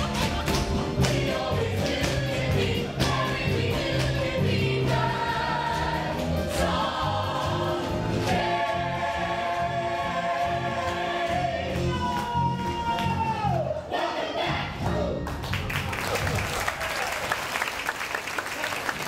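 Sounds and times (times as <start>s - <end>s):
band accompaniment: 0.0s - 15.5s.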